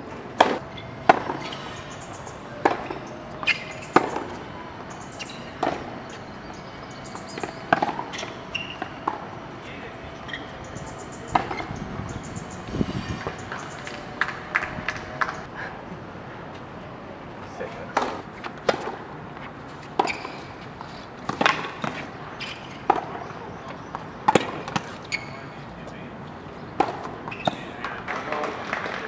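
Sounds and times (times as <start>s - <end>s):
tennis ball struck by rackets: 0.4s - 11.8s, 17.9s - 19.1s, 21.2s - 23.2s, 24.2s - 25.0s, 26.8s - 27.7s.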